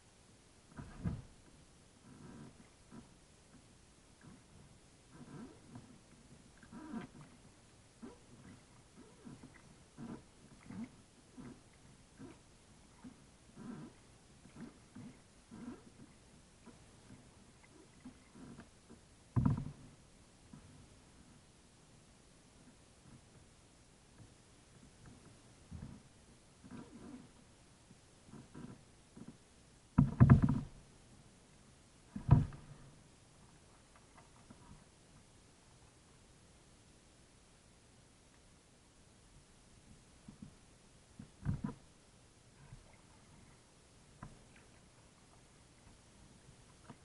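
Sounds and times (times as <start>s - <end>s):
kayak paddle strokes in water: 5.2s - 20.9s, 42.6s - 47.0s.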